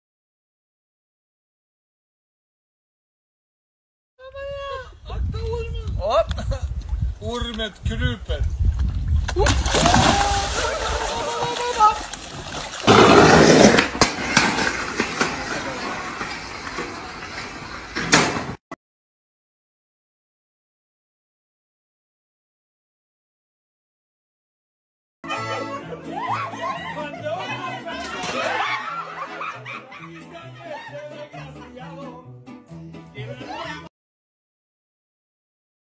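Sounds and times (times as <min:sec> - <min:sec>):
person crying out: 0:04.2 - 0:05.1, 0:09.4 - 0:12.1
loud splash: 0:09.3 - 0:16.1
people laughing hard: 0:09.8 - 0:12.1, 0:25.3 - 0:32.2
skateboard rolling on pavement: 0:12.3 - 0:18.6
accordion and guitar music: 0:25.2 - 0:28.3, 0:29.0 - 0:33.8.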